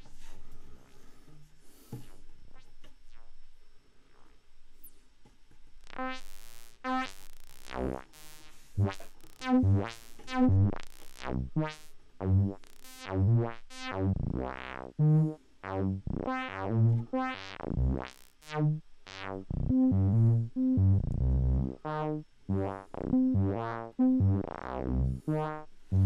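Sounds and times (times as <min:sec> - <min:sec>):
synthesizer notes with sweeping filter: 0:05.9 - 0:26.0.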